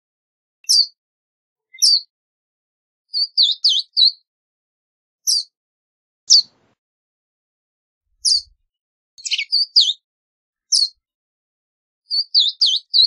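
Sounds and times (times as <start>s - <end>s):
bird calling with high sharp notes: 1.7s - 2.1s, 8.2s - 8.6s, 9.2s - 10.0s, 10.7s - 11.0s.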